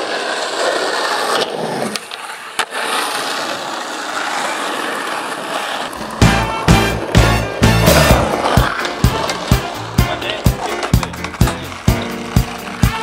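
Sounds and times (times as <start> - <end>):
skateboard clack: 0.0 - 13.0
skateboard wheels rolling on asphalt: 0.0 - 13.0.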